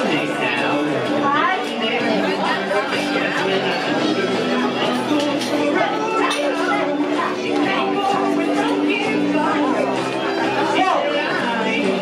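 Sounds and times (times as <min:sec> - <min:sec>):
chatter of voices: 0:00.0 - 0:12.0
music playing: 0:00.0 - 0:12.0.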